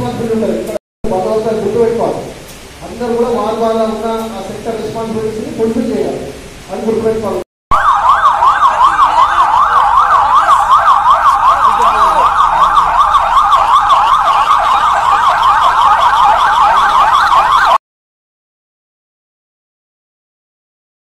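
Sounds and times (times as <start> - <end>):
police sirens yelping: 7.7 - 17.8.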